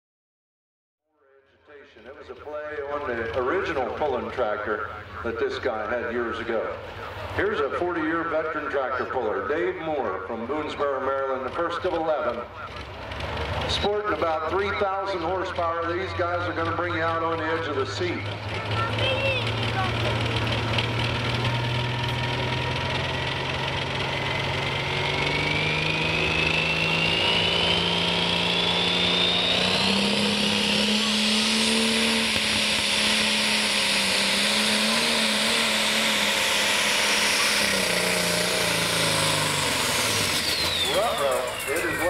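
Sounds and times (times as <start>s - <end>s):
diesel engine revving hard: 2.8s - 42.0s
turbo whine: 6.4s - 42.0s.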